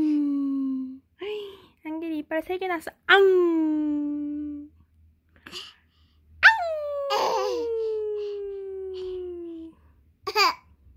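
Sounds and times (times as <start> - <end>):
high-pitched drawn-out vocal: 6.4 - 9.8.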